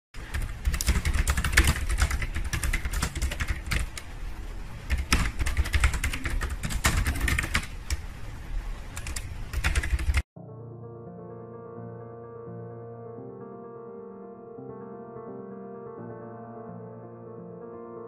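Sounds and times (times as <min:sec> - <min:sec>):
fast typing on keyboard: 0:00.2 - 0:04.1, 0:04.9 - 0:08.0, 0:08.9 - 0:10.3.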